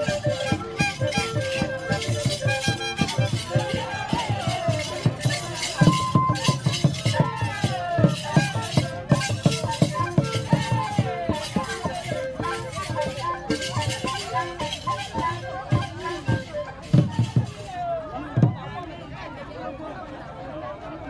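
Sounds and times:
drum strokes: 0.0 - 15.3
sliding melody line: 0.0 - 17.4.

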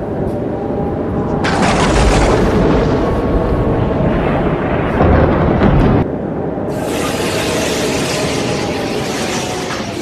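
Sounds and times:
wind with driving rain: 0.0 - 10.0.

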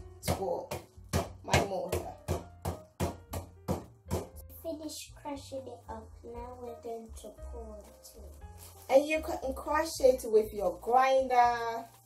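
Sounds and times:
pestle pounding nuts: 0.2 - 4.4.

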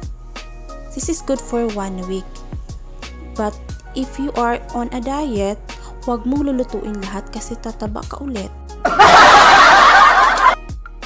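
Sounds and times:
canned laughter: 8.9 - 10.6.

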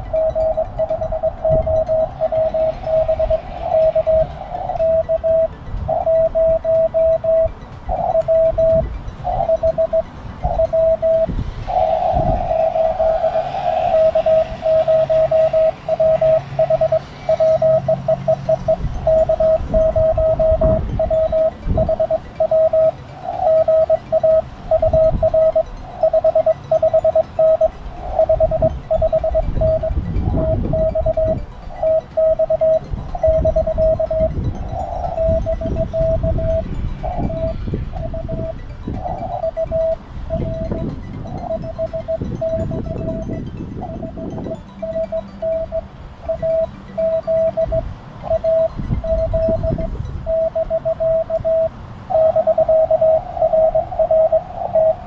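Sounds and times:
morse code beeps: 0.0 - 55.0.

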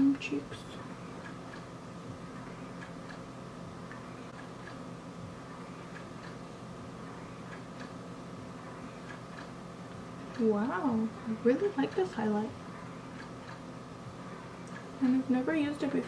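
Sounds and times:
low electrical hum: 0.0 - 16.0.

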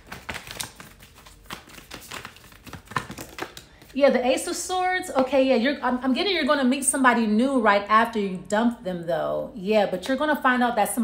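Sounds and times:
cards clicking and tapping: 0.0 - 3.9.

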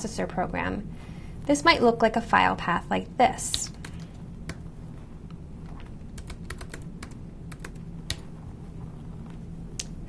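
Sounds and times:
low steady hum: 0.0 - 10.0
typing on computer keyboard: 6.2 - 8.2.

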